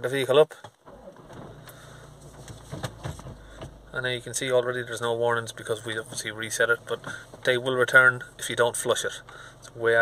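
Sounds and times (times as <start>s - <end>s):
diesel engine idling: 1.2s - 10.0s.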